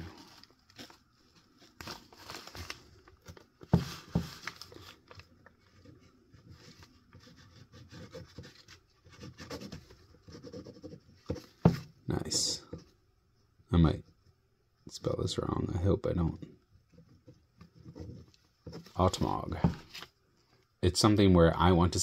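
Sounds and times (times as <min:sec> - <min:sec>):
paper crinkling and rustling: 0:00.0 - 0:10.1
pen scratching on paper: 0:07.1 - 0:11.4, 0:16.9 - 0:19.0.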